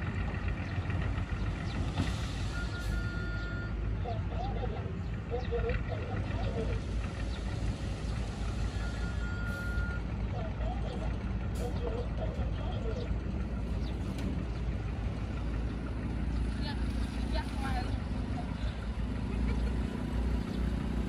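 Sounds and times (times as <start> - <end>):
diesel engine running under load: 0.0 - 21.0
voices: 0.0 - 21.0
short beep: 2.5 - 3.8, 8.7 - 10.0.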